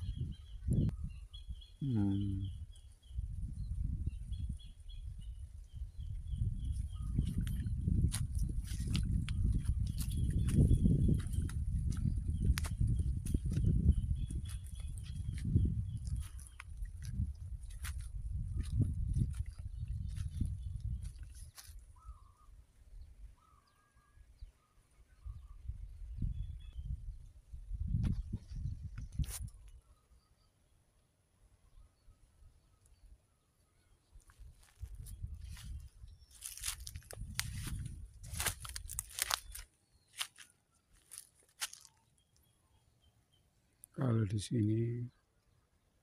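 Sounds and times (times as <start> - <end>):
wind buffeting microphone: 0.0 - 1.7, 2.4 - 22.3, 25.2 - 29.8, 34.4 - 39.6
faint bird chirps: 0.0 - 8.0, 19.5 - 27.3, 27.9 - 30.9, 31.5 - 36.9
footsteps through dry grass and leaves: 6.6 - 22.0, 34.2 - 42.1.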